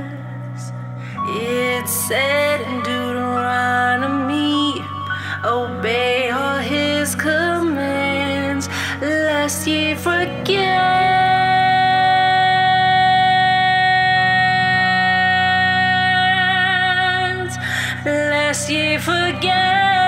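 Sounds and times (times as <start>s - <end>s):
low sustained accompaniment: 0.0s - 20.0s
woman singing mournful song: 0.0s - 20.0s.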